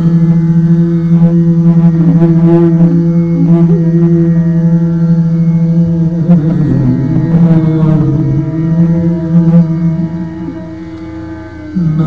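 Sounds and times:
man singing a long held note: 0.0 - 12.0.

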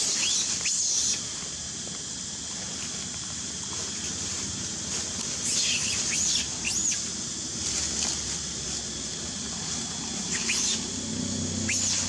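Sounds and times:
insect hiss: 0.0 - 12.0
bird chirping: 10.3 - 10.9.

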